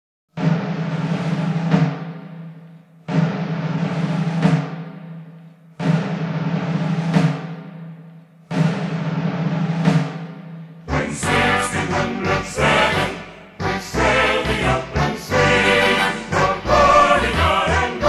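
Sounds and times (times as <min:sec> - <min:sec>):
timpani rolls: 0:00.4 - 0:18.0.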